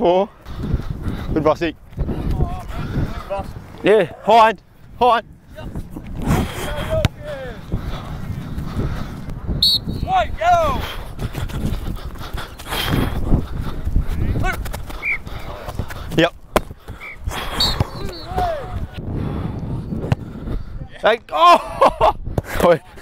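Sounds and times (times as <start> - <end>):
rustling and movement noise: 0.3 - 9.5, 10.2 - 19.0
wind on microphone: 0.4 - 21.0
players shouting calls: 9.6 - 10.8, 16.9 - 19.0.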